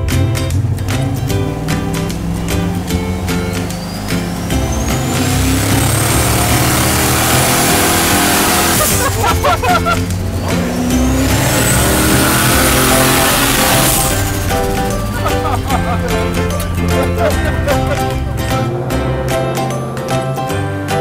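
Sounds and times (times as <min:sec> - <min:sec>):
background music: 0:00.0 - 0:21.0
truck engine accelerating with whine: 0:00.0 - 0:21.0.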